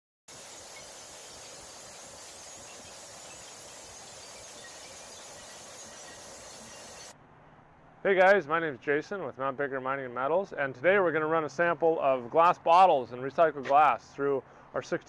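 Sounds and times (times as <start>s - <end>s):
steady hiss: 0.3s - 7.2s.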